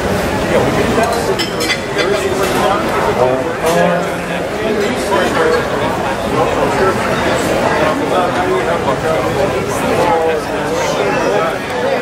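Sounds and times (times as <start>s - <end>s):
people talking at once: 0.0s - 12.0s
tableware clinking: 1.0s - 3.0s.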